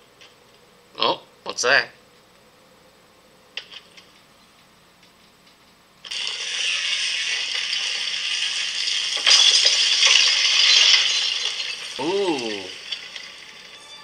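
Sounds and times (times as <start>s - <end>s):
rattling hissing sound effect: 6.0s - 14.0s.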